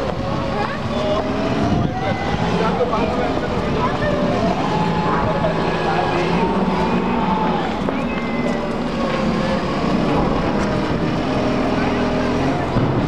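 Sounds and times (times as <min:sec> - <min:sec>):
low engine rumble: 0:00.0 - 0:13.0
people talking indistinctly: 0:00.0 - 0:13.0.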